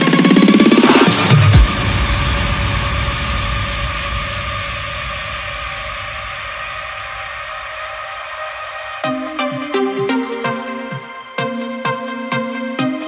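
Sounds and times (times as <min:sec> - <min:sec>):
cymbal crash: 0:00.6 - 0:09.1
low rumble: 0:01.6 - 0:09.0
held synth tones: 0:08.6 - 0:12.6.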